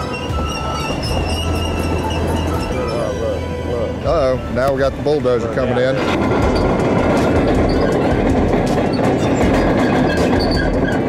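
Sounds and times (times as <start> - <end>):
background music: 0.0 - 11.0
steady low rumble: 0.4 - 10.1.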